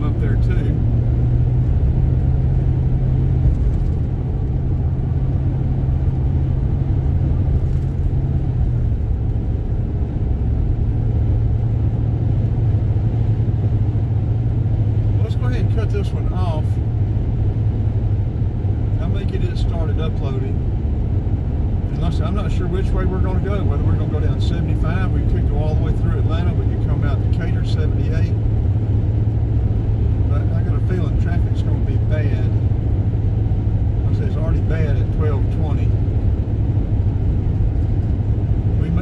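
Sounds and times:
car engine and tyre drone: 0.0s - 39.0s.

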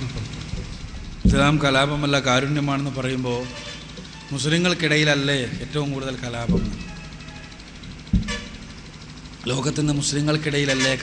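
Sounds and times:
sharp thump: 0.5s - 2.0s, 6.4s - 7.0s, 8.0s - 8.6s
high-pitched pulsing sound: 0.8s - 9.4s.

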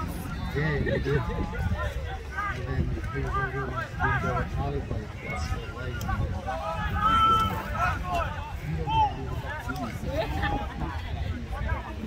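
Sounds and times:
voices calling and shouting: 0.0s - 12.0s.

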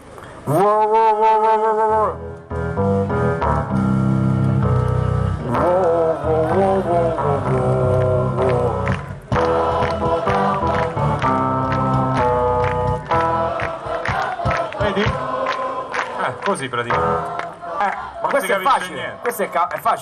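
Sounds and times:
man singing: 0.5s - 2.2s, 5.4s - 9.0s.

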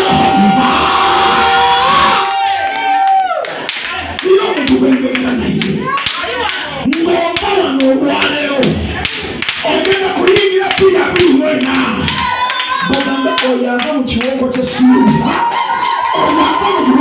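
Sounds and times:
hand clapping: 9.0s - 15.5s.

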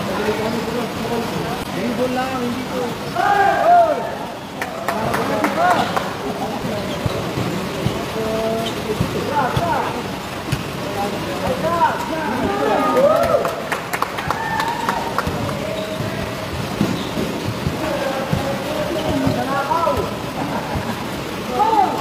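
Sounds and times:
steady background hiss: 0.0s - 22.0s
players shouting: 3.0s - 6.2s, 11.4s - 22.0s
basketball bouncing: 6.6s - 10.8s, 15.2s - 20.2s.

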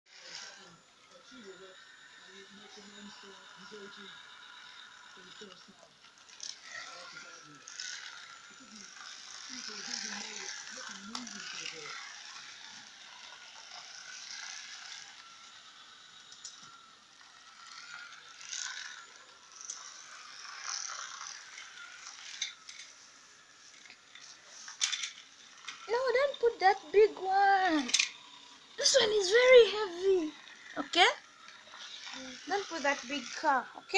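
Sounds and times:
toy car motor whirring: 0.1s - 33.9s
plastic rattle: 24.7s - 25.8s.

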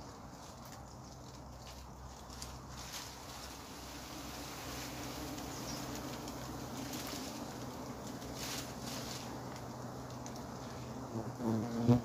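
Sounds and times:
honey bees humming: 1.8s - 12.0s
bee buzzing close: 3.9s - 12.0s.

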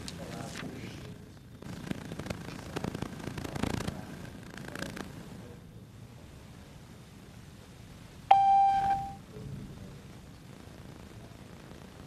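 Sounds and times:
electronic beep: 8.3s - 9.2s.

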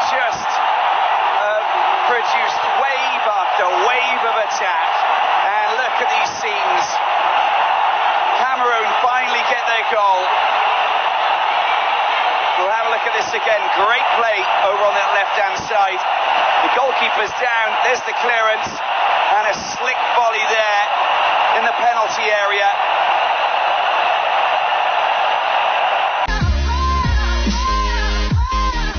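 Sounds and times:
stadium crowd cheering: 0.0s - 28.9s.

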